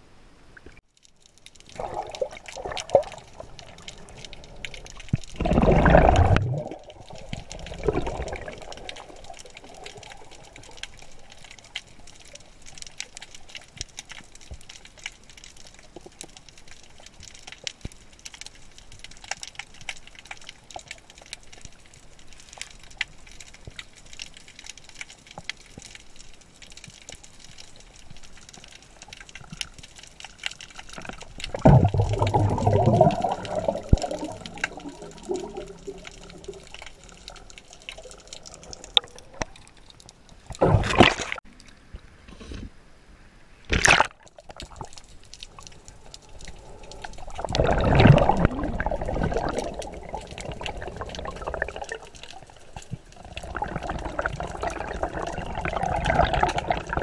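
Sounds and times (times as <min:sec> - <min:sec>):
underwater crackle of clicks: 0:00.6 - 0:42.1, 0:43.7 - 0:57.0
bubbling rushing water: 0:01.5 - 0:13.8, 0:29.0 - 0:41.5, 0:43.8 - 0:57.0.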